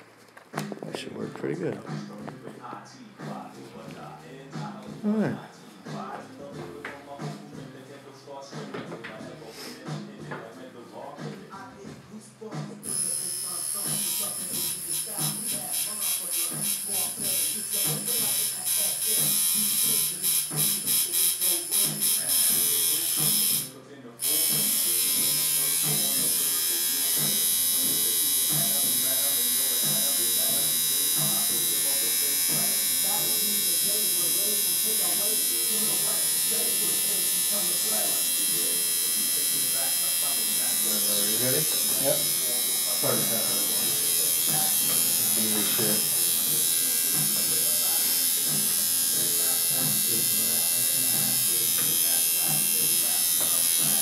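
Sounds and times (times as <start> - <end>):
electric tattoo machine buzzing: 12.8 - 54.0.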